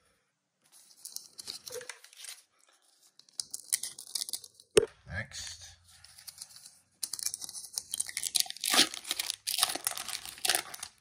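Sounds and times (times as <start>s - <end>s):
foil wrapper crinkling: 7.2s - 11.0s.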